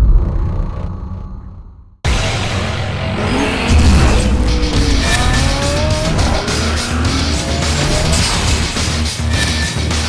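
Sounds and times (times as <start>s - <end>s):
race car engine revving: 2.1s - 9.3s
theme music with steady beat: 2.1s - 10.0s.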